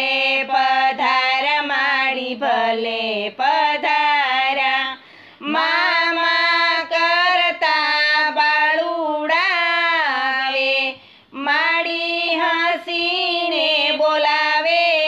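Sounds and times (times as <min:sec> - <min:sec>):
woman singing devotional song: 0:00.0 - 0:15.0.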